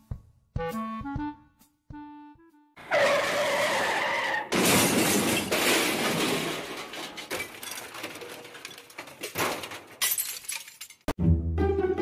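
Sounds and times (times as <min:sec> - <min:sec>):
car tyres skidding: 0:02.8 - 0:05.1.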